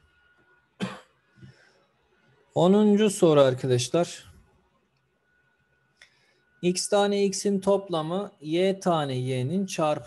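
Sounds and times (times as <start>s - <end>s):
man coughing: 0.8s - 1.2s.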